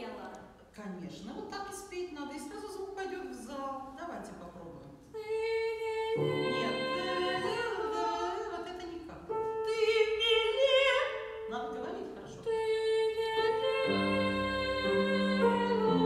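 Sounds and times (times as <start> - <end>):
boy singing classical song: 5.0 - 16.0
grand piano accompaniment: 6.2 - 16.0.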